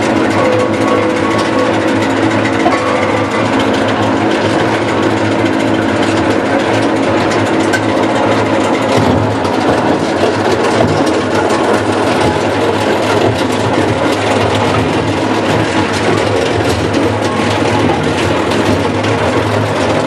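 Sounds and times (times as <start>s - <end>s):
rattle of tire chips being ground: 0.0s - 20.0s.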